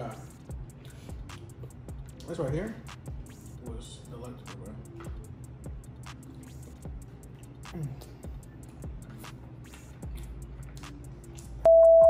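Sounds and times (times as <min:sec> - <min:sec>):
faint background music: 0:00.0 - 0:12.0
loud test tone beep: 0:11.7 - 0:12.0.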